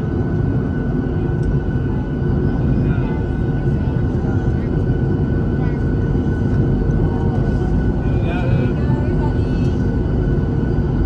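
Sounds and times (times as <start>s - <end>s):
jet engines rumbling and whining: 0.0s - 11.0s.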